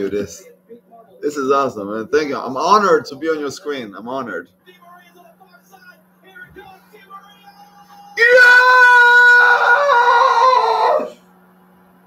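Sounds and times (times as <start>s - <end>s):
faint low hum: 0.0s - 12.0s
man screaming in excitement: 7.3s - 11.2s.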